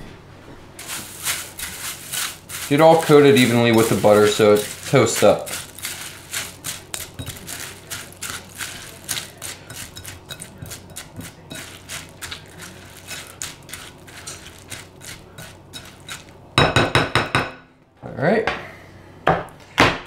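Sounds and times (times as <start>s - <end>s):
spatula scraping cereal in glass bowl: 0.8s - 16.4s.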